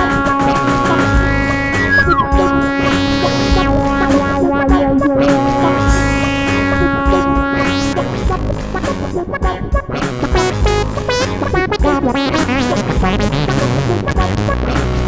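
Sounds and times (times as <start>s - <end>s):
wind synth holding bright note: 0.0s - 8.2s
looped backing with low beat: 0.0s - 15.0s.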